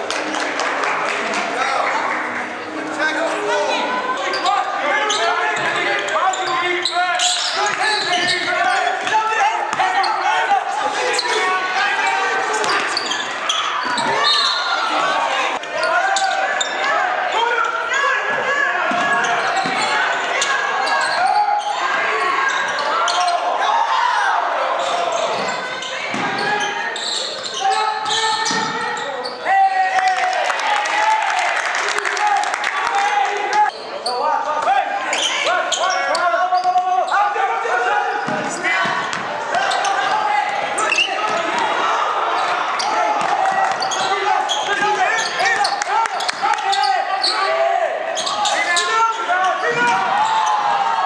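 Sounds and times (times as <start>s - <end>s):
voices echoing in hall: 0.0s - 51.0s.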